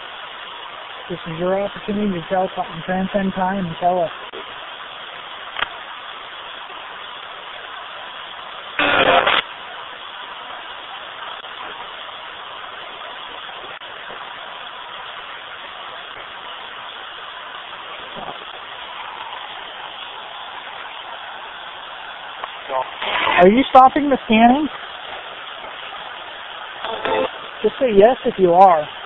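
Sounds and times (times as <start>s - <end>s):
radio static hiss: 0.0s - 29.0s.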